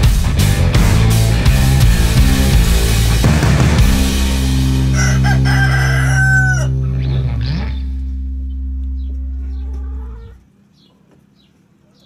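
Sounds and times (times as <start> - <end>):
held low music chord: 0.0 - 10.4
rooster crowing: 4.8 - 7.0.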